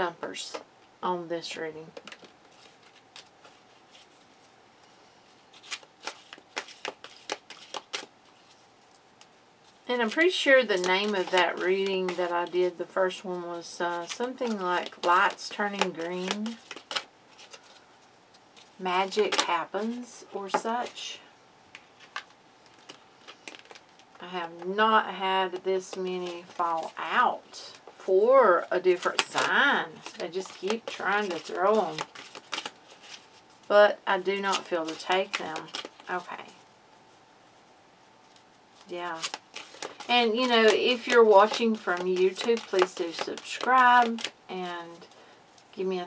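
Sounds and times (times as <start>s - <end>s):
cards being shuffled: 1.9s - 4.5s, 5.4s - 12.6s, 13.9s - 21.0s, 21.8s - 24.8s, 25.4s - 28.0s, 28.8s - 33.6s, 34.2s - 36.6s, 38.2s - 45.7s.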